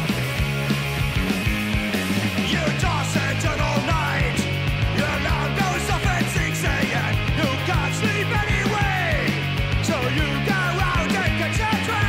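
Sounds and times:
driving drum beat: 0.0 - 12.0
electric guitars and bass: 0.0 - 12.0.

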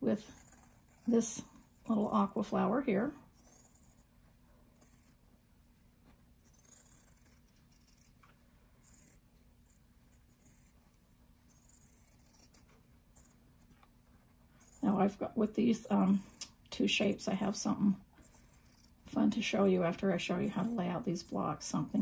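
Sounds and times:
scissors snipping fabric: 11.4 - 13.9.

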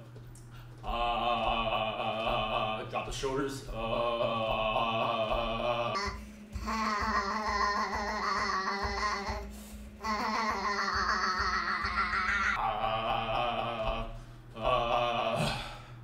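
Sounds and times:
man holding low vocal tones: 0.6 - 16.0
breath: 14.2 - 14.5, 15.4 - 16.0.

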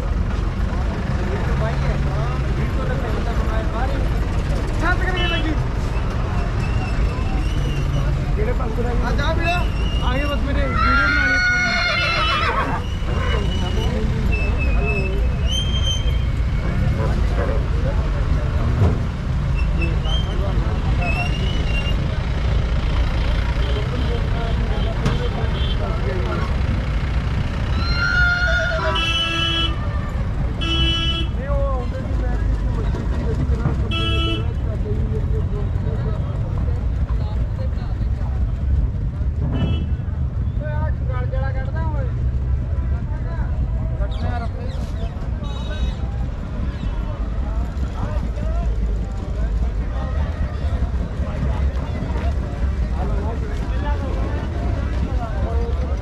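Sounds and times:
horse whinnying: 10.7 - 13.6, 27.7 - 28.9
distant voices: 31.4 - 56.0.

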